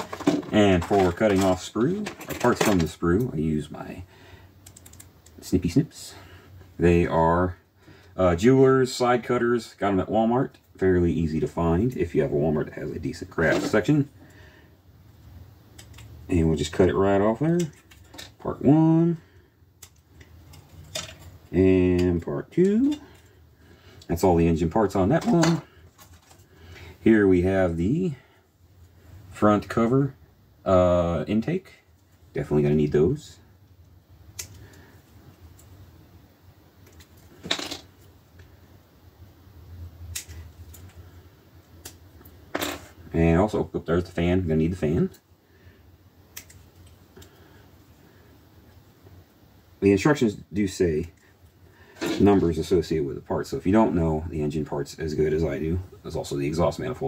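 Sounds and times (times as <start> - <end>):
low steady hum: 0.0 - 57.0
plastic clicks and snaps: 46.3 - 47.3.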